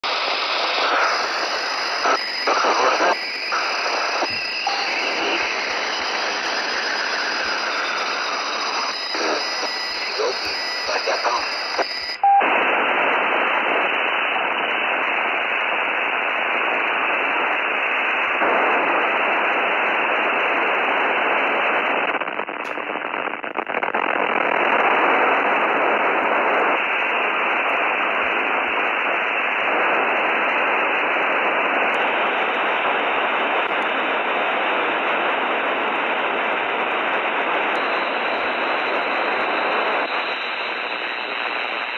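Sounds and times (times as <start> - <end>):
radio static: 0.0 - 41.9
faint voice over radio: 2.0 - 5.6, 9.1 - 12.4.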